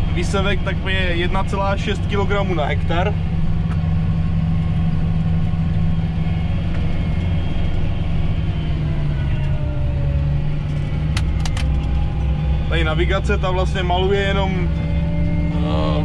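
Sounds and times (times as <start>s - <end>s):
tractor diesel engine droning: 0.0s - 16.0s.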